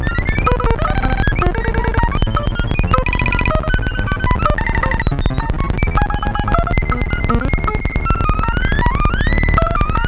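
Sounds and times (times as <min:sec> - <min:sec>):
glitchy synth rhythm: 0:00.0 - 0:10.0.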